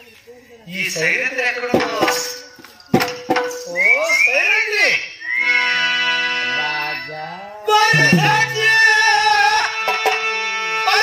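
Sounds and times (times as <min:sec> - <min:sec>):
sharp strikes: 0:07.9 - 0:08.9
person singing: 0:07.9 - 0:09.0
musical accompaniment: 0:07.9 - 0:09.1.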